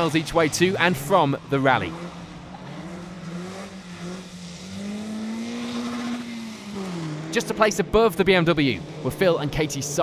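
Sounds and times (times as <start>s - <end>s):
rally car engine pulling past: 0.0s - 9.5s.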